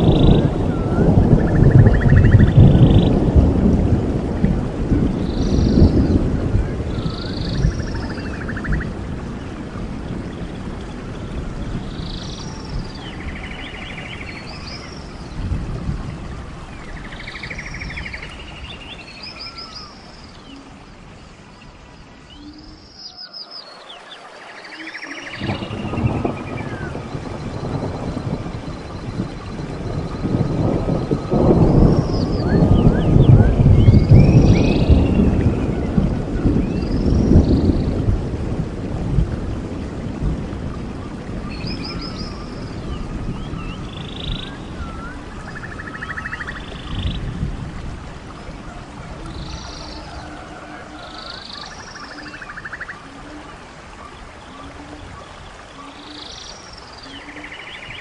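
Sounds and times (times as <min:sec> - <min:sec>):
thunder rolling: 0:00.0 - 0:18.3, 0:25.3 - 0:52.8
birds calling: 0:16.4 - 0:36.0.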